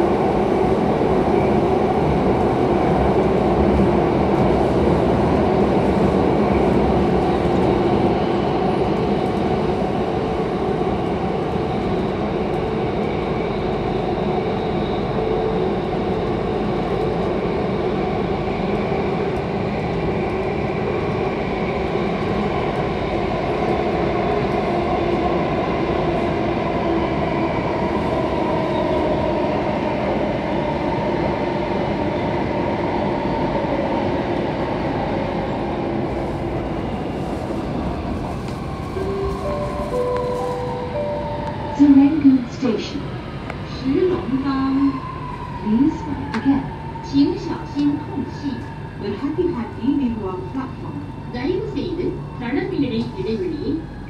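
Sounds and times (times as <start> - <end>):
wheels rumbling on rail: 0.0 - 54.0.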